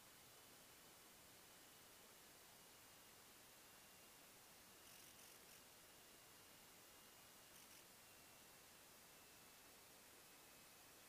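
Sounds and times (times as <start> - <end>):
faint flutters of noise: 0.0 - 11.0
faint steady hiss: 0.0 - 11.0.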